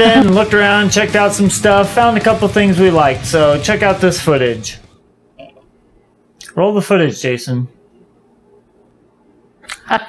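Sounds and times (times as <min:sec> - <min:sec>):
person's voice burst: 0:00.0 - 0:00.6.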